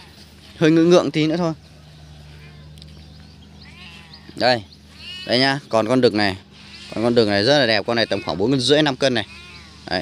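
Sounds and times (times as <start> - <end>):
low steady hum: 0.0 - 10.0
faint animal cries: 2.0 - 2.9, 3.5 - 5.7, 6.5 - 10.0.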